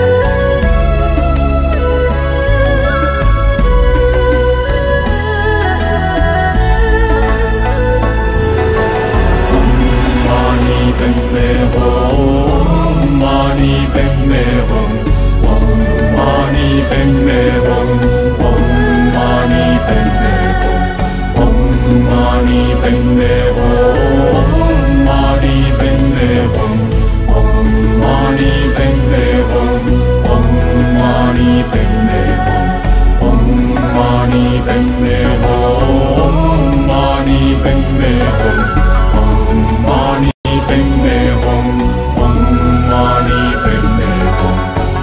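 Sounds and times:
low sustained notes: 3.4s - 40.0s
chanted mantra vocal: 8.8s - 45.0s.

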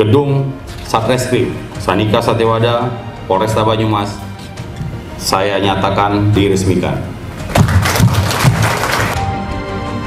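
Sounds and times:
audience applause: 7.5s - 9.2s.

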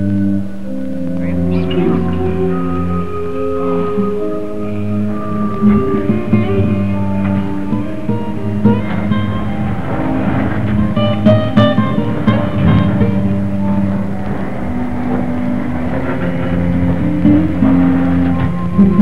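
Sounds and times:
guitar-led instrumental music: 0.0s - 19.0s.

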